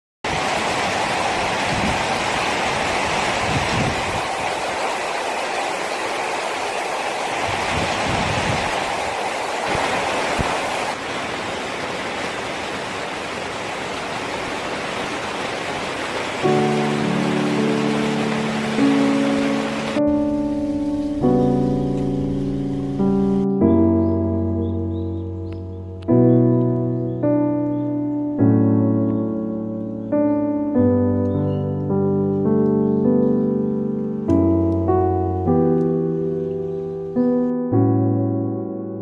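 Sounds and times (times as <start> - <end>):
heavy rain on foliage: 0.2 - 37.2
piano music: 16.4 - 39.0.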